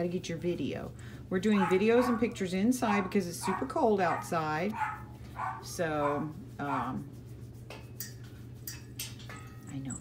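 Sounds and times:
woman's voice: 0.0 - 4.8, 5.6 - 7.1
steady low hum: 0.0 - 10.0
hand scratching dog fur: 1.5 - 9.3.

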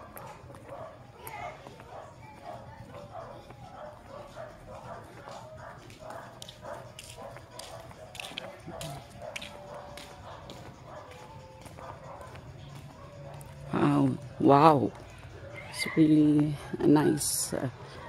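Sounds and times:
faint dog barking: 0.0 - 13.8.

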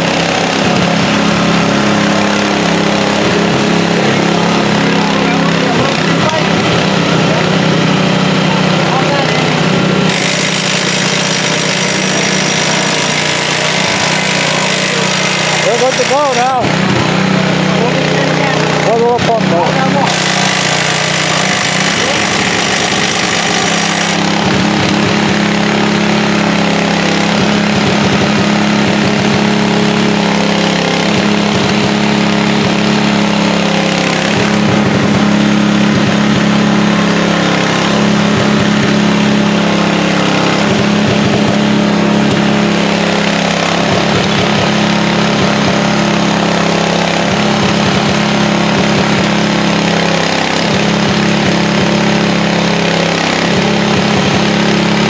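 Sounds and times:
large engine running loudly: 0.0 - 55.0.

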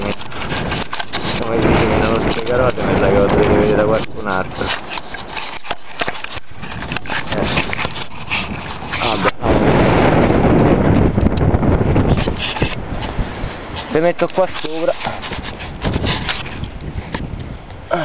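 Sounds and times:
man speaking: 1.4 - 4.7, 13.9 - 15.2
loud rough rushing noise: 6.3 - 16.5.

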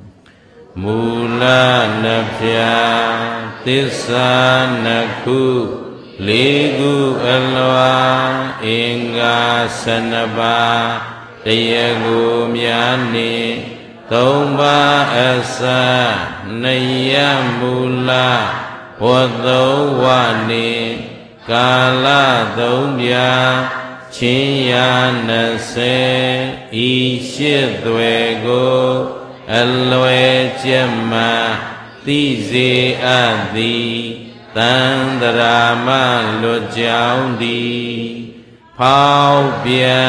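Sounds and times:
man chanting into microphone: 0.7 - 40.0.

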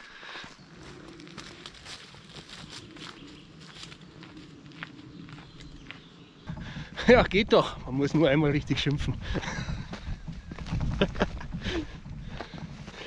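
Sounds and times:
footsteps crunching on dirt track: 0.0 - 13.0.

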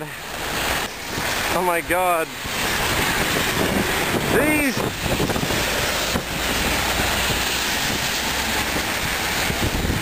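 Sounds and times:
heavy rain hissing: 0.0 - 10.0
wind buffeting microphone: 0.4 - 10.0.

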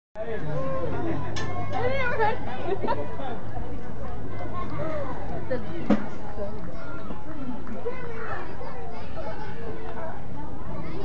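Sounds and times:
spectators and children chattering: 0.2 - 11.0.

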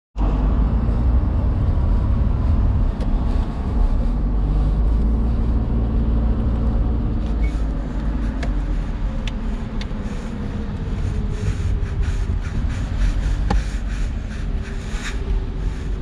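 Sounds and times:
car engine and road noise: 0.2 - 16.0.

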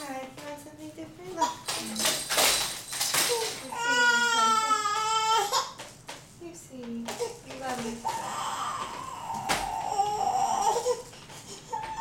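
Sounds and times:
infant crying: 3.6 - 5.8, 8.0 - 12.0.

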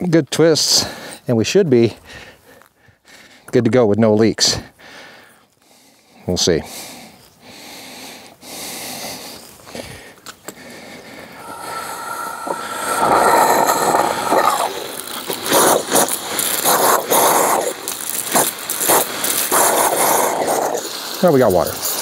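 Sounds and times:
hose nozzle hissing: 11.2 - 22.0
water sputtering from nozzle: 11.4 - 22.0.

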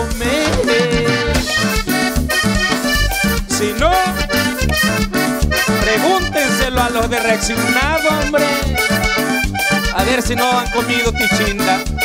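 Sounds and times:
drums: 0.0 - 7.8
electric bass: 0.0 - 11.2
keyboard melody: 0.0 - 12.0.

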